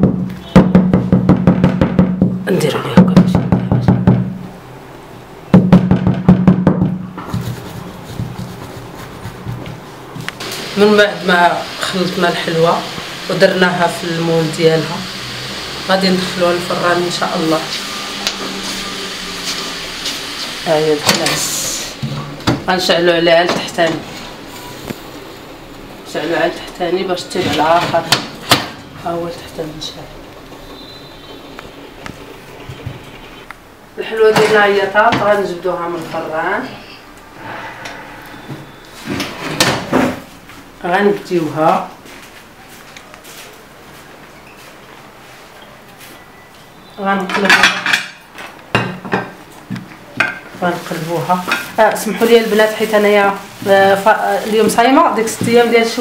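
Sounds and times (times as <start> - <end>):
rapid sharp knocks: 0.0 - 2.4, 5.5 - 7.6
oven humming: 6.9 - 40.4.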